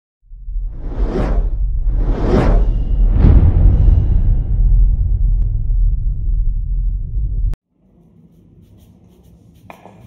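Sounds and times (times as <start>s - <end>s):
deep bass rumble: 0.3s - 7.6s
cinematic whoosh: 0.4s - 7.6s.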